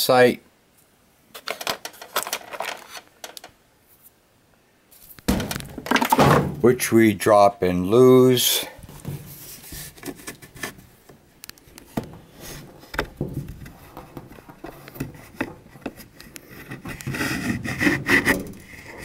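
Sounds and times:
rubbing and scraping: 0:08.8 - 0:11.0, 0:11.9 - 0:19.0.

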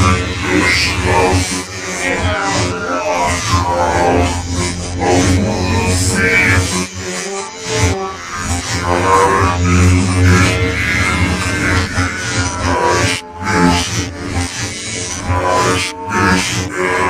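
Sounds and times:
strong low bass: 0:00.0 - 0:07.0, 0:08.2 - 0:14.3
held pitched notes: 0:00.0 - 0:14.4.

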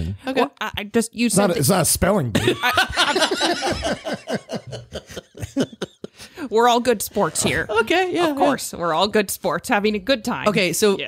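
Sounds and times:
people laughing: 0:02.4 - 0:06.4.

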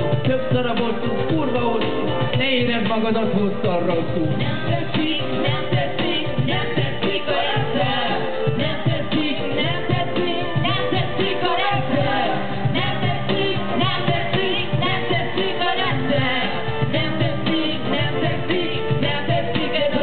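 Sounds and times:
live band with singers: 0:00.0 - 0:20.0.

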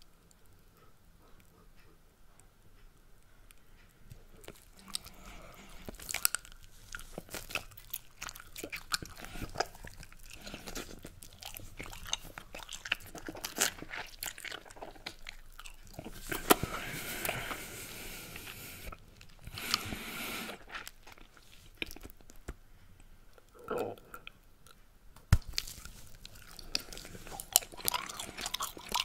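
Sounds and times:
bubblegum chewing smacks and pops: 0:25.2 - 0:29.0.

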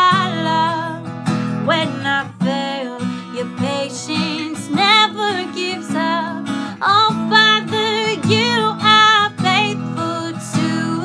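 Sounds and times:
woman singing worship song: 0:00.0 - 0:01.0, 0:01.6 - 0:11.0
strummed acoustic guitar: 0:00.0 - 0:11.0.

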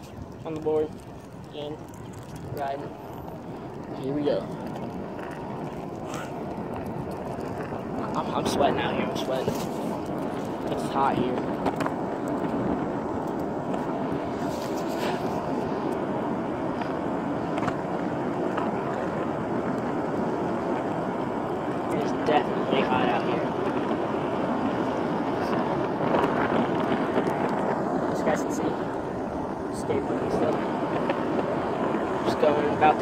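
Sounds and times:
skateboard wheels rolling on asphalt: 0:00.0 - 0:33.0.

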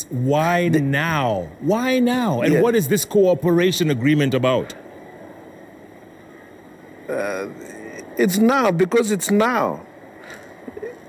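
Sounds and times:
faint hiss on audio line: 0:00.0 - 0:11.0.

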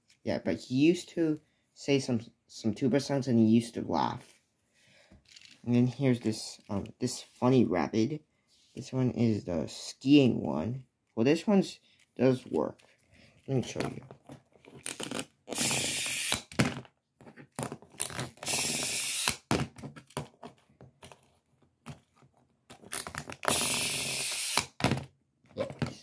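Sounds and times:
toy motor whirring: 0:14.8 - 0:16.5, 0:18.0 - 0:19.4, 0:23.0 - 0:24.8.

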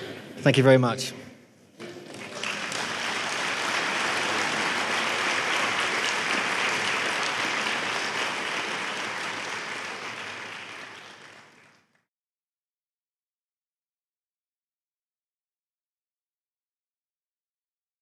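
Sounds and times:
audience applauding: 0:01.8 - 0:12.1.

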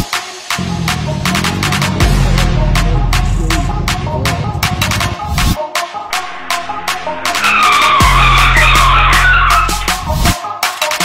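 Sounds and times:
music with steady beat: 0:00.0 - 0:11.0
deep bass tone: 0:00.6 - 0:08.8
screeching transition effect: 0:06.1 - 0:10.2.

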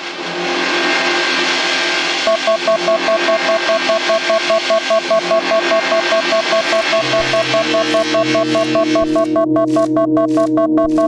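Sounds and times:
noisy electronic drone: 0:00.0 - 0:11.0
high pulsed tone with clicks: 0:02.2 - 0:11.0.

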